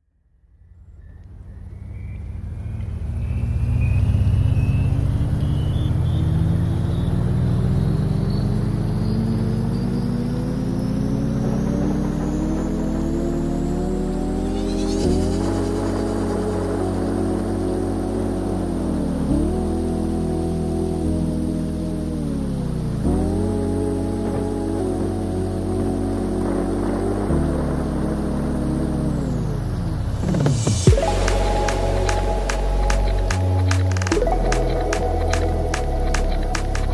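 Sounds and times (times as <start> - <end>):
low drone rising in pitch: 0.4 - 36.9
low rumble: 10.7 - 36.9.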